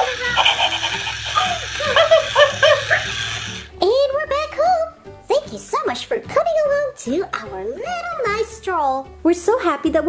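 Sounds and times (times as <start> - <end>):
toy puppy yips: 0.0 - 3.1.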